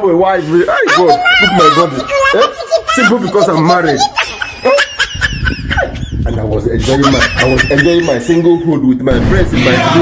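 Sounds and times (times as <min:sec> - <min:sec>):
man sobbing and wailing: 0:00.3 - 0:09.0.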